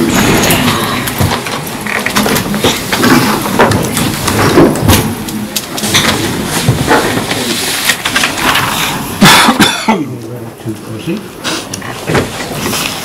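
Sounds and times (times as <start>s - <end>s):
people moving seats rustling: 0.0s - 13.0s.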